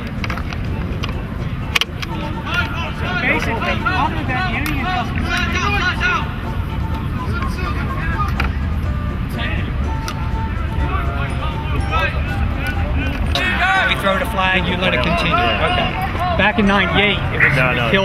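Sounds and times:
indistinct voices talking: 0.0s - 18.0s.

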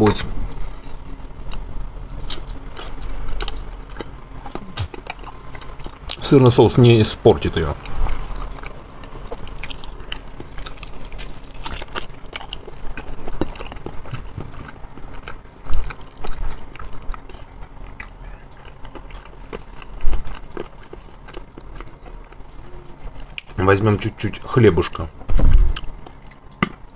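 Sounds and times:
man chewing food: 0.4s - 6.2s, 7.8s - 23.6s, 25.1s - 26.9s.

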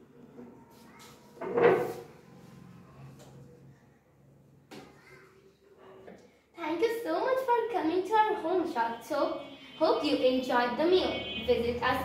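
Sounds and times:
plastic chair scraping on tiles: 1.2s - 3.2s.

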